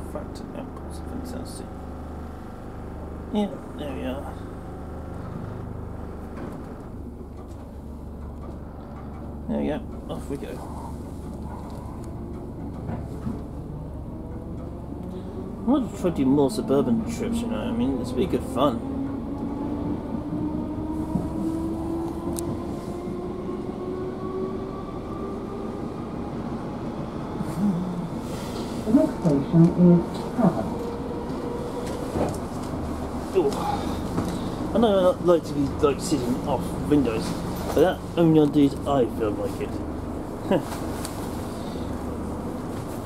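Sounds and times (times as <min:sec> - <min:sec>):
train hum and rumble: 0:00.0 - 0:43.0
train motor whine rising: 0:28.1 - 0:38.0.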